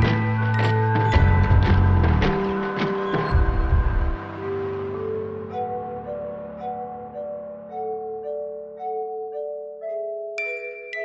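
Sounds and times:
bell-like melody: 0.0 - 11.0
low musical accompaniment: 0.0 - 11.0.

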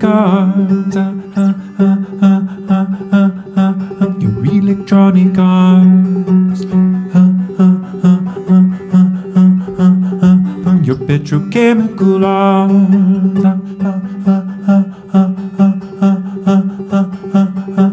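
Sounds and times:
banjo picked in steady rhythm: 0.0 - 17.9
man singing: 0.0 - 17.9
sustained low drone: 5.8 - 11.0.

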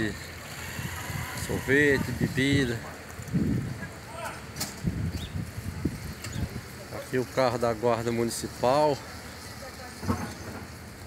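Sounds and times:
wind on microphone: 0.6 - 4.0, 4.7 - 6.8.

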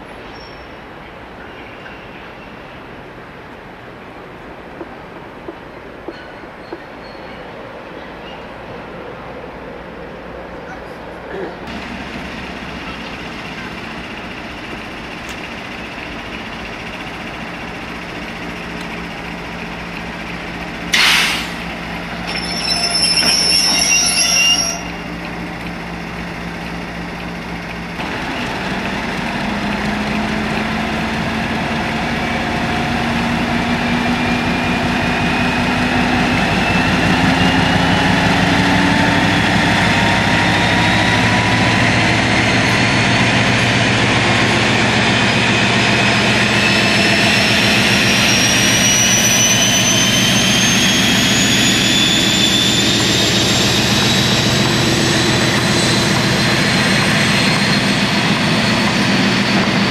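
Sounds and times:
diesel locomotive engine pulling away: 6.2 - 59.9
brief high-pitched tone: 22.2 - 25.1
rising whine: 28.0 - 59.9.

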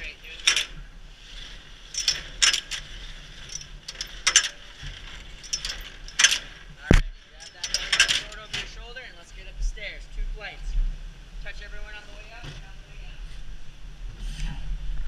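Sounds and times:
metal ladder clicks and clanks: 0.0 - 8.8.

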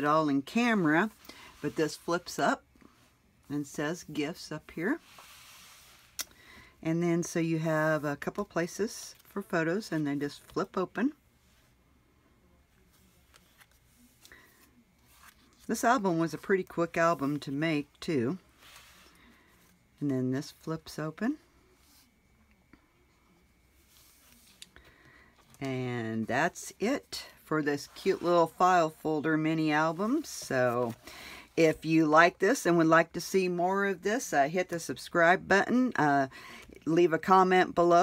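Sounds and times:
paper rustling: 12.8 - 16.7.

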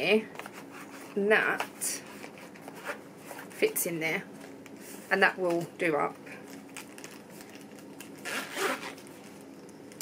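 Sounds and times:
zip rasping shut: 8.2 - 9.0.

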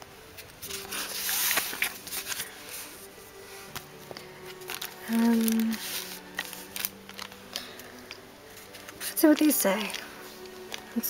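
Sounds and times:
soft background music: 0.0 - 11.0
sticker sheets rustling: 0.4 - 3.9, 4.5 - 7.8, 8.6 - 11.0.

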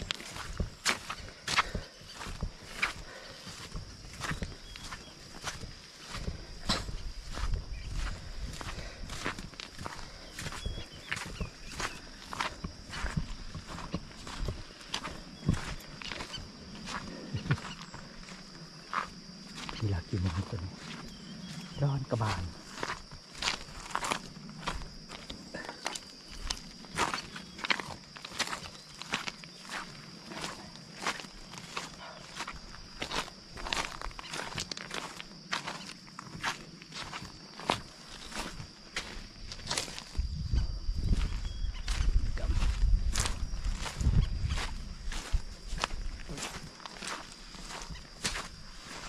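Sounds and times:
footsteps on sand and pebbles: 0.0 - 49.0.

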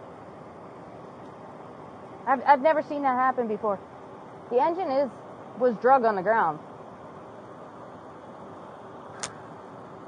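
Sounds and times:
outdoor background noise: 0.0 - 10.0
short sharp click: 9.2 - 9.4.

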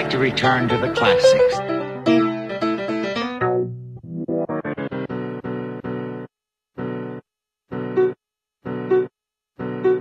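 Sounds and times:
keyboard chords: 0.0 - 10.0.

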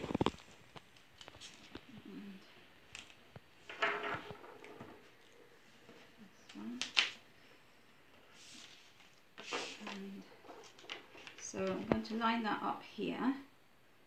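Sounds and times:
paper handled on a table: 8.2 - 12.0.

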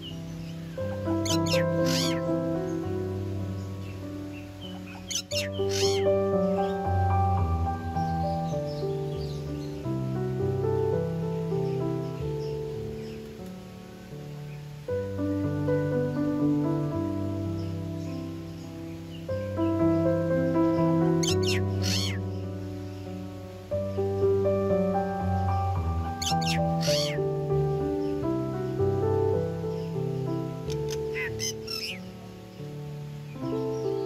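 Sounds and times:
bird harsh calls: 0.0 - 7.1, 17.6 - 23.3, 25.0 - 34.0
piano music: 0.0 - 34.0.

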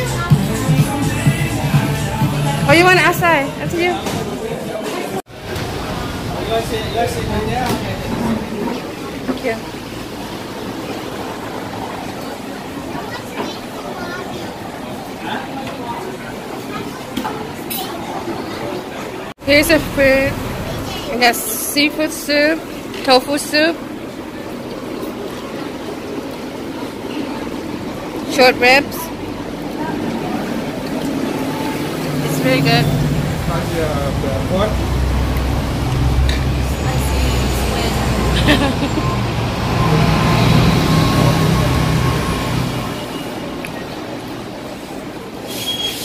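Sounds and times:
busy restaurant background hum: 0.0 - 46.0.

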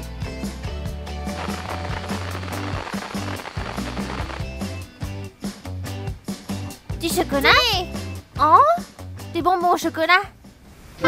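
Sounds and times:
background music with bass line: 0.0 - 9.8.

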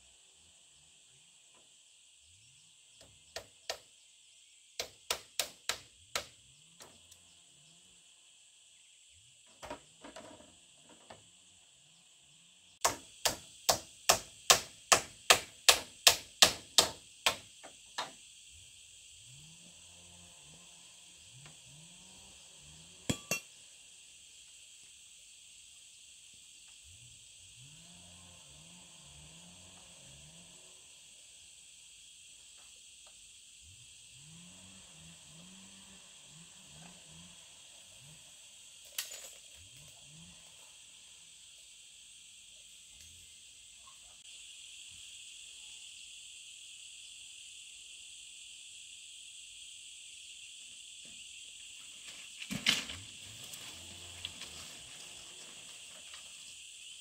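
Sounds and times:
hammer blows on bamboo: 4.8 - 6.4, 12.8 - 18.2
high-pitched insect drone: 17.3 - 52.4.

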